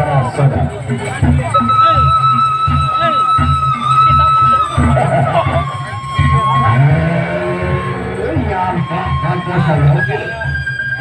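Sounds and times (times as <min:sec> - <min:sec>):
steady drumbeat: 0:00.0 - 0:10.6
voices: 0:00.0 - 0:11.0
wind instrument long notes: 0:00.0 - 0:11.0.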